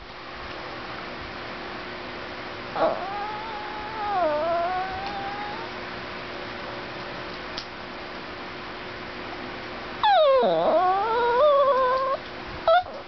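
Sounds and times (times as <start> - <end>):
dog whining: 2.8 - 5.8, 10.0 - 13.0.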